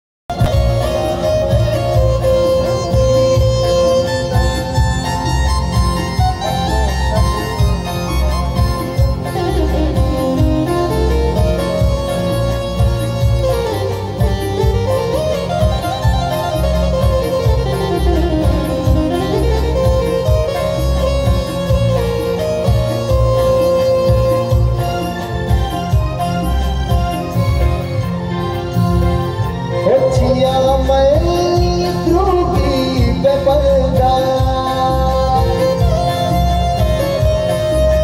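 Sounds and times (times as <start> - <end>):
electronic keyboard melody: 0.3 - 38.0.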